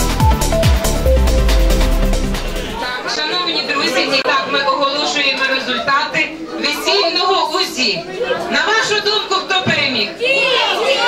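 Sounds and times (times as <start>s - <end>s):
people talking in a hall: 2.0s - 11.0s.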